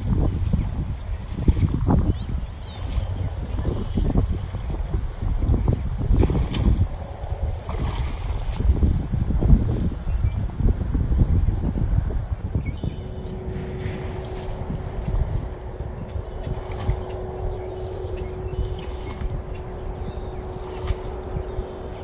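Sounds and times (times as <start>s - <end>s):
steady faint hum: 0.0s - 22.0s
wind rumble on microphone: 0.0s - 22.0s.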